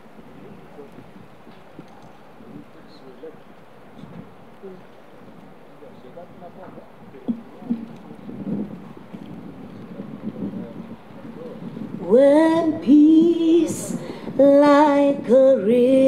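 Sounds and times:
woman singing: 0:12.0 - 0:16.0.

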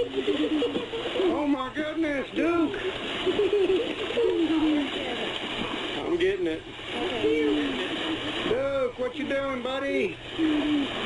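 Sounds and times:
horse splashing water in a pool: 0:02.5 - 0:08.8
woman cooing: 0:10.4 - 0:11.0.

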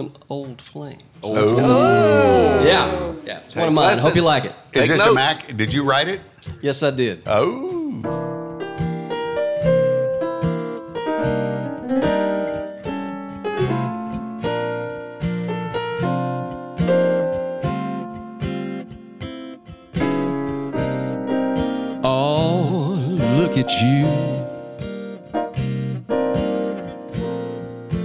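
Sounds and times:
acoustic guitar blues: 0:07.4 - 0:28.0.

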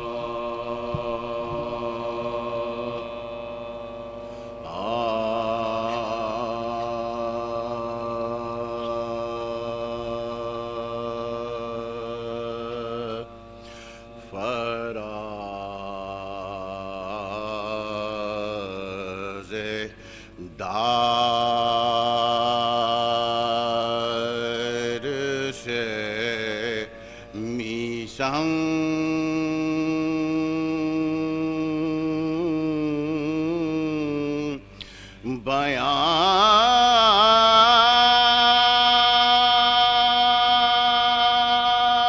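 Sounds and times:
men chanting a lament: 0:00.0 - 0:34.7, 0:35.3 - 0:42.0.

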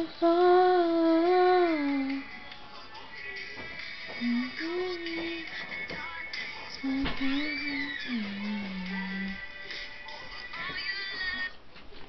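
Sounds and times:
song with singing voice: 0:00.0 - 0:11.6.

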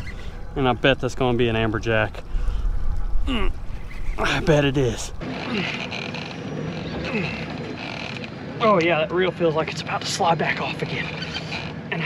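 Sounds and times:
man grunting and groaning: 0:03.2 - 0:04.4.

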